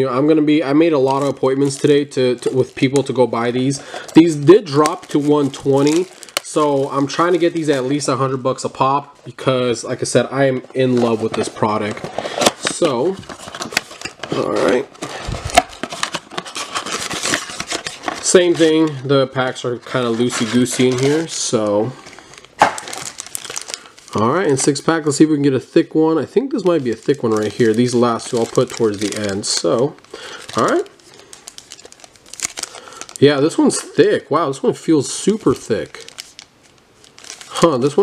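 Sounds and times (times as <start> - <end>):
foil packs crinkling: 0.8 - 10.1, 10.7 - 38.0.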